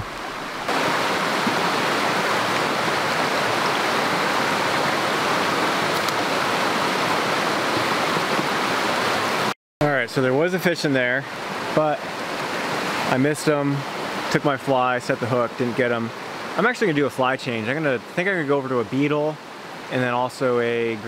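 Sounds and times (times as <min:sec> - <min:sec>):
stream rushing over stones: 0:00.0 - 0:21.0.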